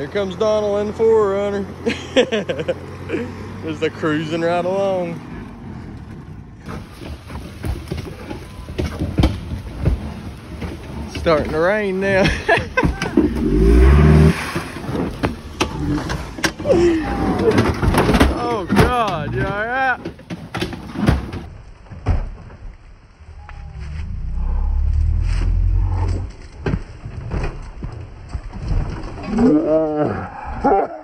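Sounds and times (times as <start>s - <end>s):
people talking: 0.0s - 1.7s, 3.6s - 5.2s, 11.1s - 13.3s, 16.6s - 20.1s
car engine labouring uphill: 0.0s - 21.5s
people laughing: 1.8s - 3.4s, 12.2s - 13.3s.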